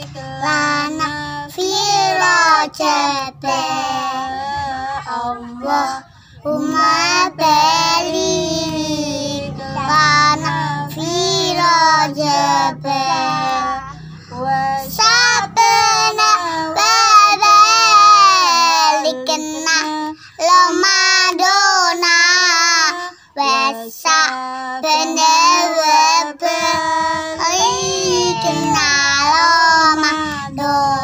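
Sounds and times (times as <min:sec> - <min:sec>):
girls singing: 0:00.0 - 0:31.0
woman singing: 0:00.0 - 0:31.0.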